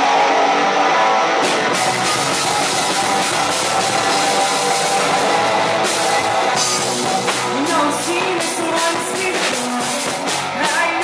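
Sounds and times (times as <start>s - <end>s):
electric guitars strummed: 0.0s - 11.0s
drum kit: 1.4s - 11.0s.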